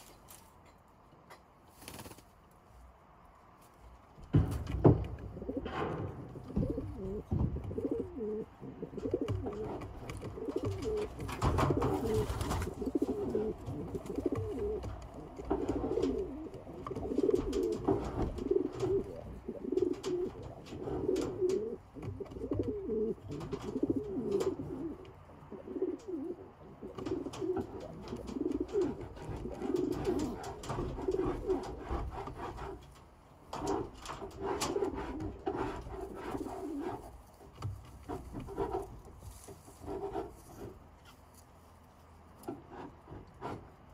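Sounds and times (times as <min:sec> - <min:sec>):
pigeons cooing: 0:05.2 - 0:32.8, 0:33.6 - 0:37.2.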